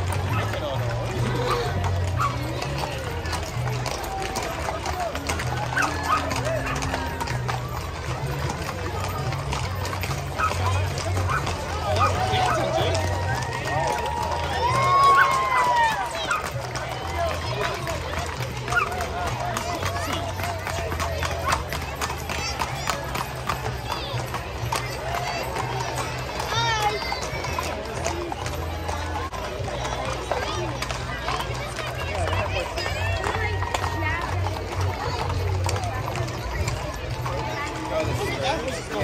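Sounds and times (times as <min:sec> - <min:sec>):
crowd voices: 0:00.0 - 0:39.0
hooves clip-clopping on asphalt: 0:00.0 - 0:39.0.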